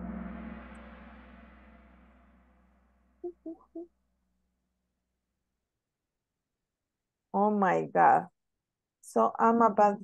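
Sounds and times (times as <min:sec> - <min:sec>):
ringing gong strike: 0:00.0 - 0:02.8.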